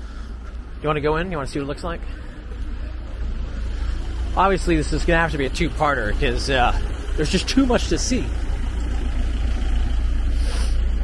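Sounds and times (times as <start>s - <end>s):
truck engine rumbling: 0.0s - 11.0s
short hiss: 10.3s - 10.9s.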